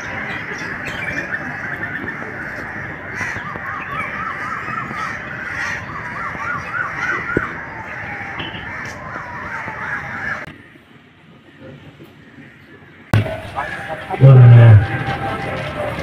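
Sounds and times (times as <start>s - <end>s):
birds calling: 0.0s - 16.0s.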